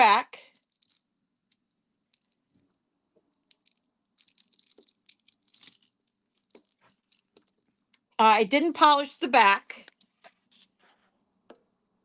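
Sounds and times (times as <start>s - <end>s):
necklace links clinking: 0.4s - 8.1s, 9.8s - 10.8s.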